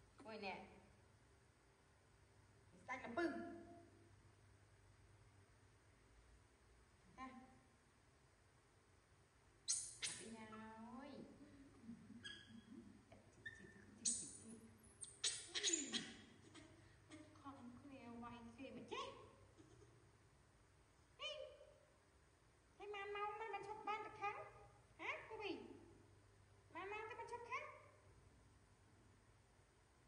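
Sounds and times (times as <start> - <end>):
baby monkey squeaking: 9.7 - 10.6, 11.8 - 16.7.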